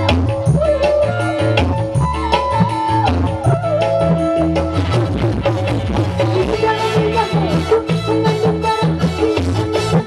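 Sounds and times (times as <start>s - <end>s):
hand-drum beat: 0.0s - 10.0s
keyboard melody: 0.0s - 10.0s
live band music: 0.0s - 10.0s
steady bass: 0.0s - 10.0s.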